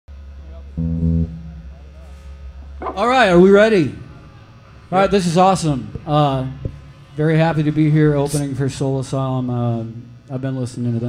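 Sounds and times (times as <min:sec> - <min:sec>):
low amplifier hum: 0:00.1 - 0:11.0
amplified guitar low note: 0:00.6 - 0:04.4.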